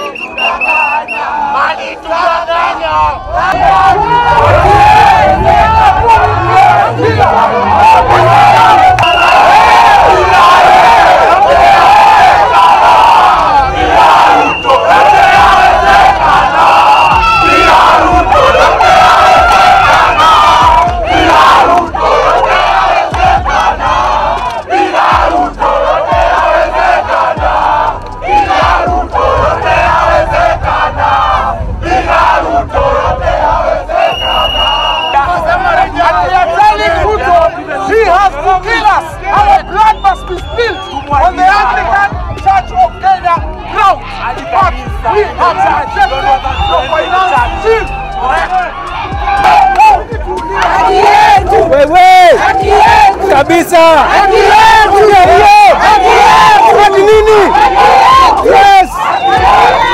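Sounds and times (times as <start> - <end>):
crowd of protesters shouting: 0.0 - 59.9.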